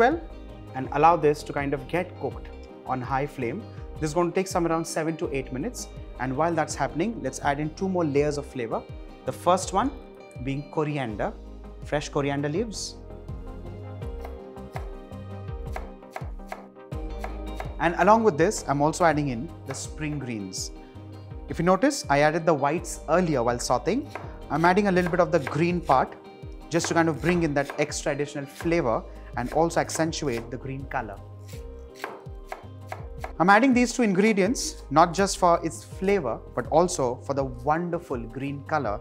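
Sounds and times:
knife chopping on wooden board: 14.2 - 15.0, 15.7 - 17.8, 19.7 - 20.3, 24.1 - 26.0, 26.8 - 28.0, 29.4 - 30.5, 31.4 - 33.4.

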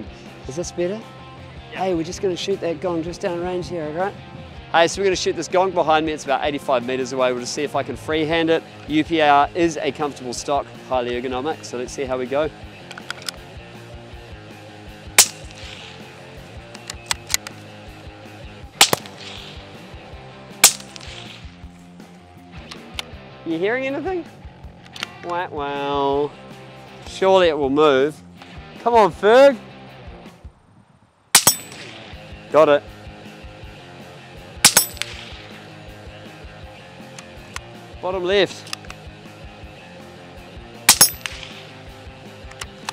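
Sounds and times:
background music: 0.0 - 30.5, 31.4 - 42.9
suppressed rifle shots: 15.2 - 16.1, 18.8 - 19.7, 20.6 - 21.6, 31.4 - 32.2, 34.6 - 35.6, 40.9 - 41.9.

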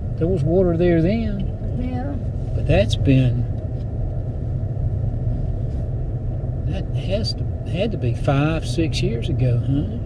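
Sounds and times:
car driving on paved road: 0.0 - 10.0.

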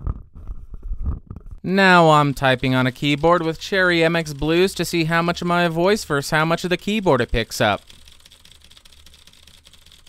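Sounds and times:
mechanical keyboard typing clicks: 2.2 - 10.0.

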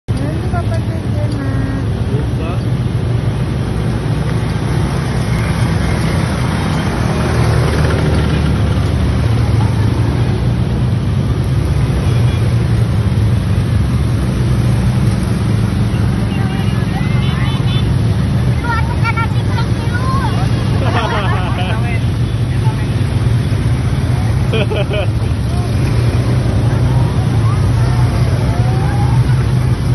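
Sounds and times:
riders' voices: 0.1 - 14.8, 15.4 - 29.9
quad bike engines droning: 0.1 - 29.9.

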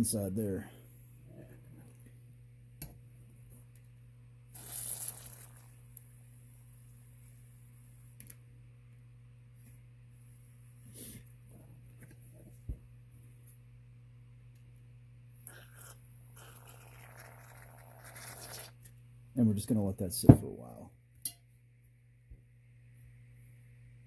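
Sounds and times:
steady low hum: 0.0 - 4.6, 5.4 - 24.0.

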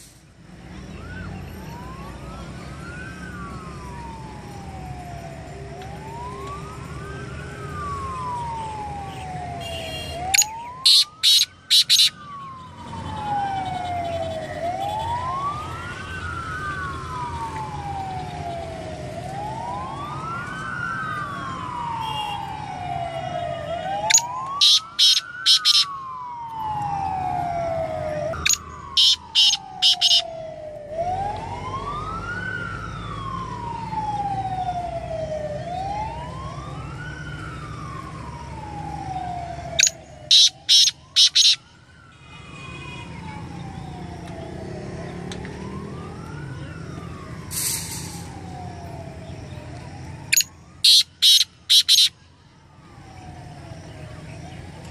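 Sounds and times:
siren wailing: 0.8 - 54.9
bird calling harsh phrases: 10.4 - 12.1, 39.8 - 41.6, 50.8 - 52.1.

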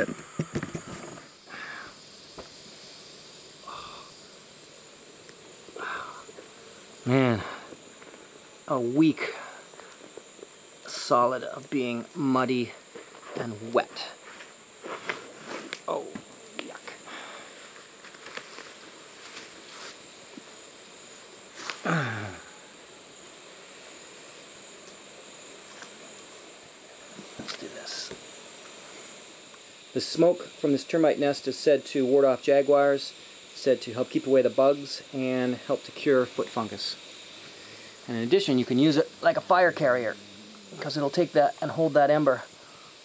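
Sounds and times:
insects droning high pitch: 0.0 - 43.0.

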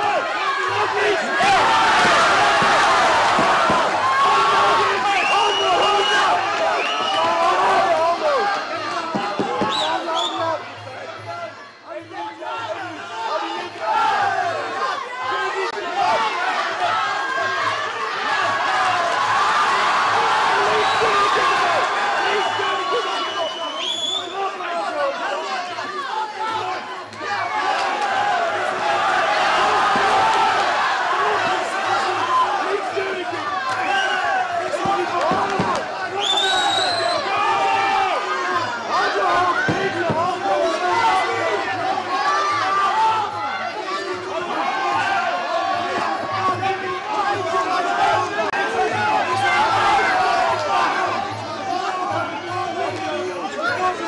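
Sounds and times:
crowd shouting and cheering: 0.0 - 54.0.

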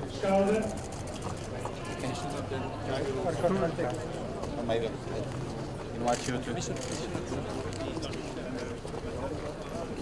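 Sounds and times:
men talking: 1.7 - 10.0.

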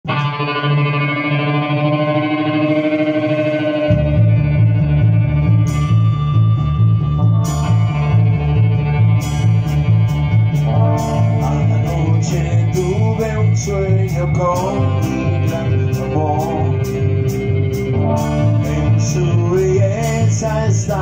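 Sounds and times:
electric guitar sustained notes: 0.0 - 21.0
pulsing bass line: 0.0 - 21.0
drums beat: 3.9 - 21.0
cymbal crash: 16.8 - 20.2.

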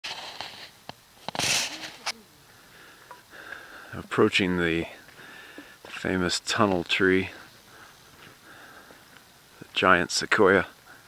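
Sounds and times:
loud breath: 2.5 - 4.0, 5.1 - 5.8, 7.3 - 9.1.

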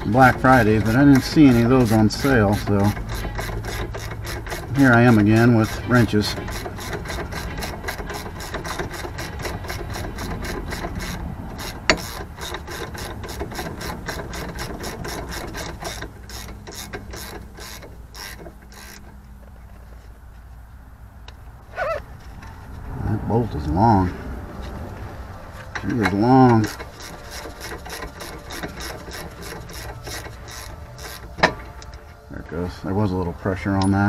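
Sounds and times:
ratchet wrench clicking: 0.0 - 19.4, 25.8 - 32.0.

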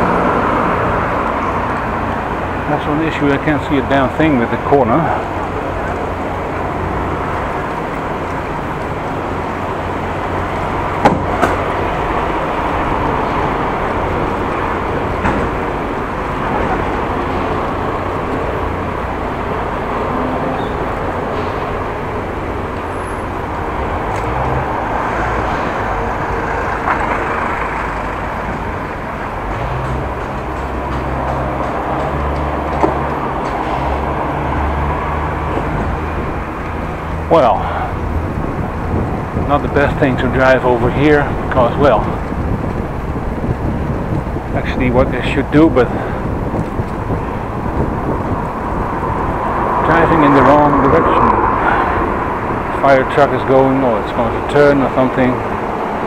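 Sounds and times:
city traffic noise: 0.0 - 56.0
low rumble: 45.8 - 53.4.

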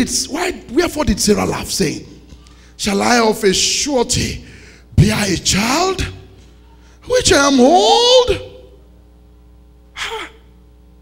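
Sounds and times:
faint steady hum: 0.0 - 11.0
man gasping into microphone: 4.4 - 4.9.

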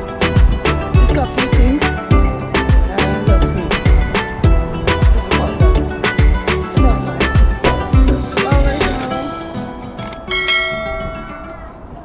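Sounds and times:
bell chime ringing: 10.3 - 11.8.

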